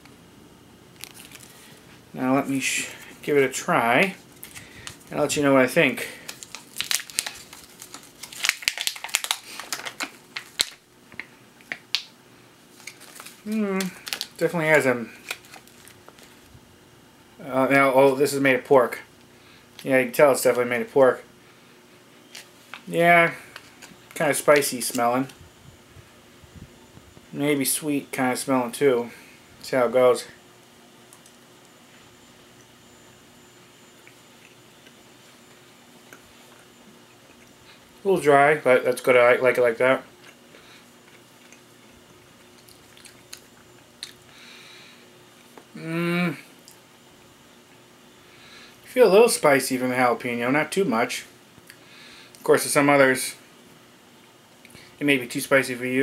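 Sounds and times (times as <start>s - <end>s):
faint room hum: 0.0s - 56.0s
plastic wrapper crinkling: 1.0s - 1.8s, 4.2s - 5.2s, 6.1s - 12.1s, 12.7s - 14.5s, 15.1s - 16.5s
faint chewing: 34.0s - 37.9s, 40.2s - 44.4s.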